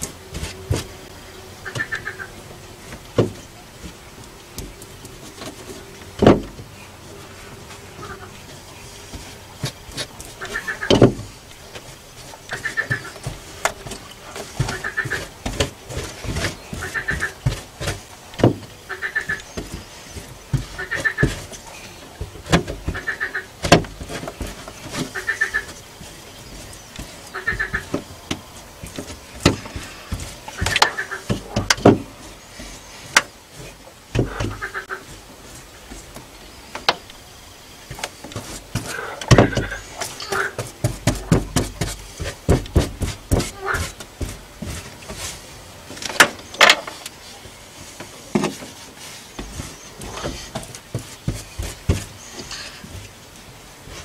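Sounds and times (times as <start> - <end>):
brush tapping and knocking: 8.0 - 37.2, 37.8 - 54.0.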